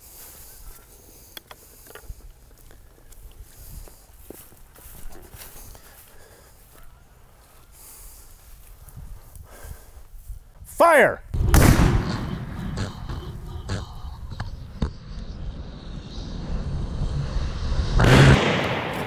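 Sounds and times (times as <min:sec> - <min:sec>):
footsteps in dry grass: 0:00.0 - 0:10.7
man shouting: 0:10.7 - 0:11.2.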